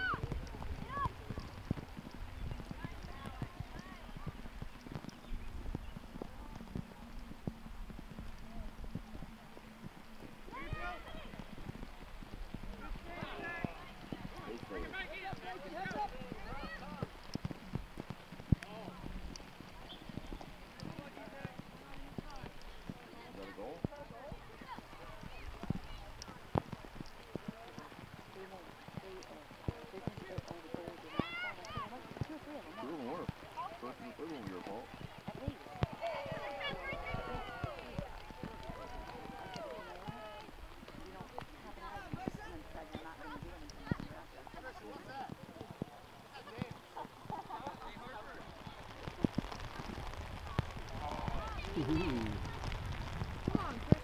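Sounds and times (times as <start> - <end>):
distant voices and shouts: 0.0 - 1.8, 10.4 - 12.0, 12.6 - 17.3, 19.8 - 54.0.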